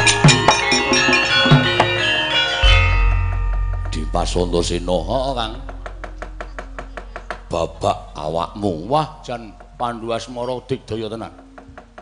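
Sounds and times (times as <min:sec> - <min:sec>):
gamelan metal keyed instruments: 0:00.0 - 0:09.9
deep gong struck: 0:02.6 - 0:08.9.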